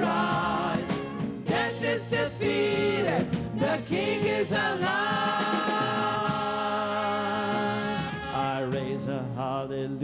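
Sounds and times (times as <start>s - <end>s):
gospel singers and band: 0.0s - 10.0s.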